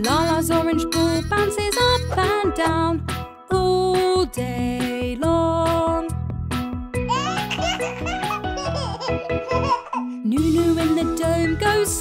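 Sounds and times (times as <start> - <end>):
cheerful children's music: 0.0 - 12.0
baby giggling and laughing: 7.1 - 10.2.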